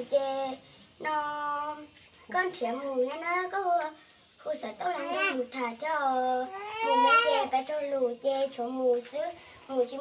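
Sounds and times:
girl singing held notes: 0.0s - 10.0s.

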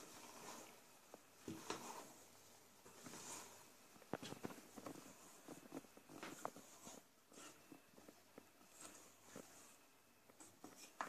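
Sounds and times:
spatula scraping metal bowl: 1.4s - 2.3s.

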